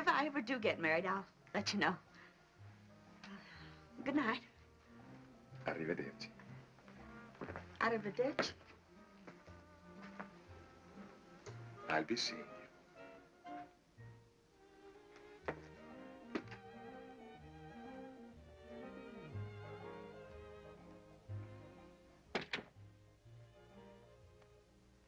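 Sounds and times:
soft orchestral film score: 0:00.0 - 0:25.0
door being shut: 0:22.3 - 0:22.7.

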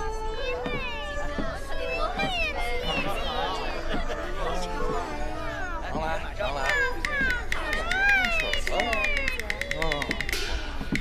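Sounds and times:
background music: 0:00.0 - 0:11.0
people talking: 0:00.0 - 0:11.0.

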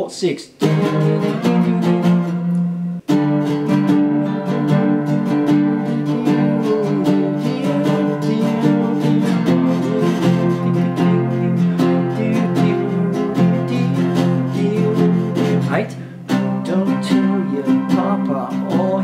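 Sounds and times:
slide guitar strumming: 0:00.6 - 0:19.0.

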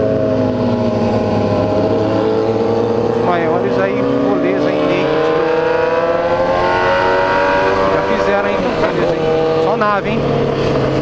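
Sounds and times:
motorcycle engine accelerating: 0:00.0 - 0:11.0.

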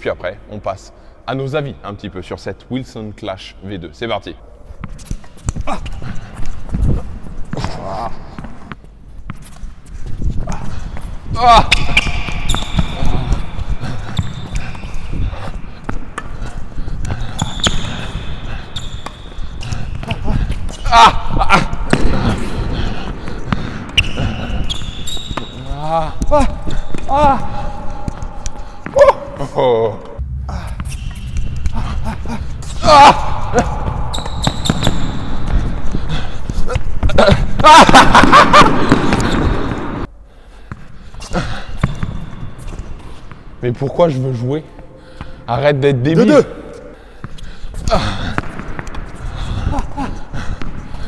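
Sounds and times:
shoe squeaks: 0:11.5 - 0:16.0, 0:17.2 - 0:21.0, 0:23.9 - 0:27.4, 0:30.6 - 0:37.9
person laughing: 0:31.6 - 0:34.1, 0:36.7 - 0:39.4
person exclaiming: 0:31.8 - 0:33.9.

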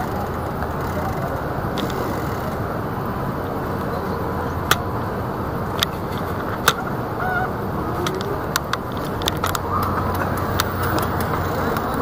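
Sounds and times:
rumble of engines and tyres: 0:00.0 - 0:12.0.

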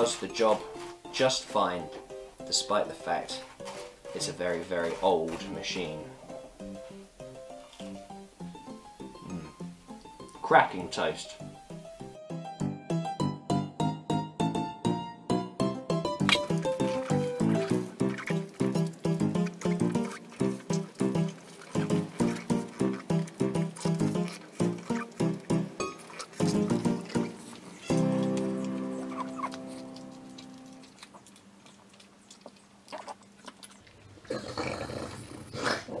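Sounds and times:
dog eating toast: 0:16.3 - 0:34.9
held chord: 0:27.9 - 0:30.8.

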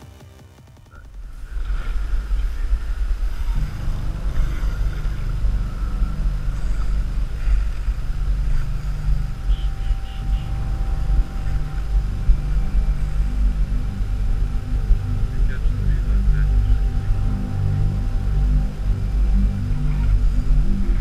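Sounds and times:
background music: 0:00.0 - 0:21.0.

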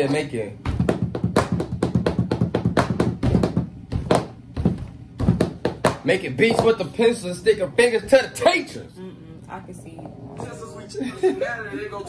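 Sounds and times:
quick uneven taps and knocks: 0:00.1 - 0:06.8.

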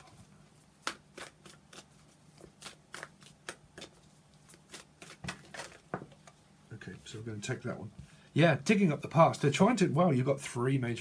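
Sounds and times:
cards being shuffled: 0:00.0 - 0:06.4.

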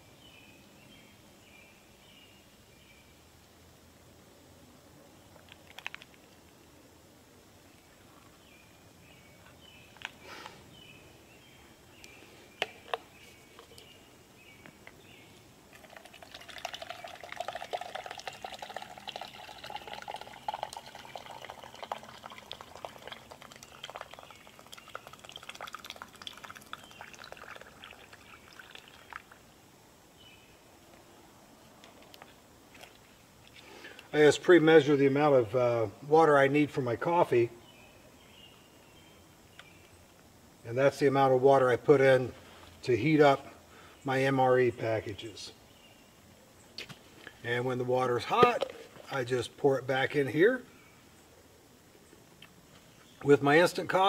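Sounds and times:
birds chirping: 0:07.6 - 0:29.5
water poured into metal cup: 0:15.7 - 0:29.4.

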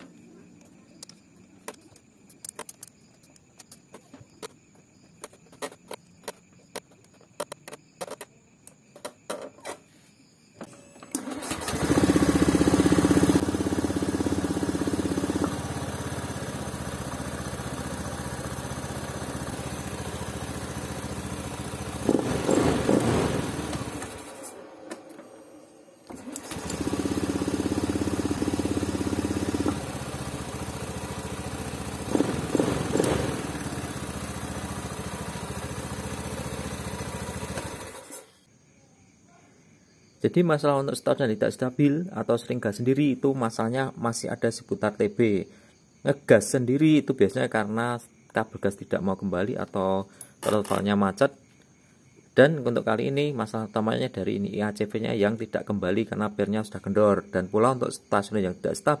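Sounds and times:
starter clicks: 0:00.0 - 0:09.8
scooter engine idling: 0:11.2 - 0:24.4, 0:26.1 - 0:38.3.

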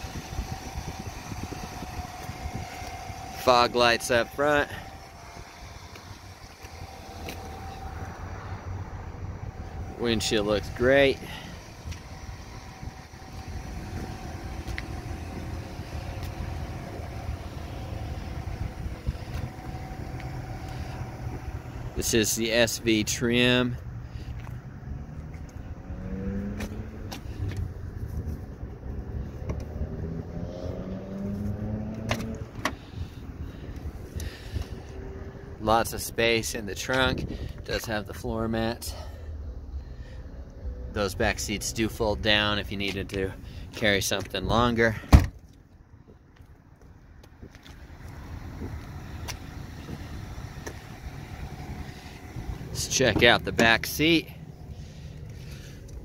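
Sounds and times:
car engine running: 0:00.0 - 0:56.0
low outdoor rumble: 0:00.0 - 0:56.0
trunk lid clicks: 0:32.0 - 0:32.8.

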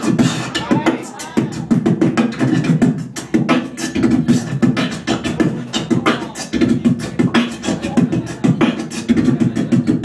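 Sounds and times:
human beatboxing: 0:00.0 - 0:10.0.

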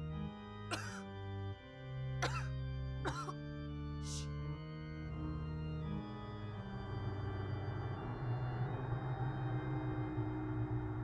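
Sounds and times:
film score held chords: 0:00.0 - 0:11.0.

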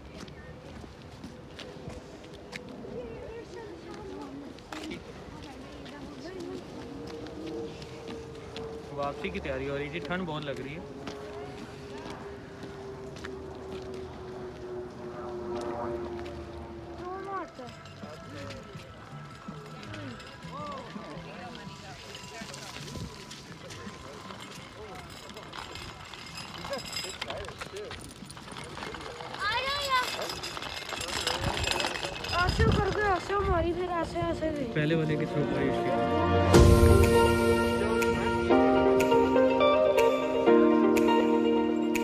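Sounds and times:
people talking off-mic: 0:00.0 - 0:42.0.

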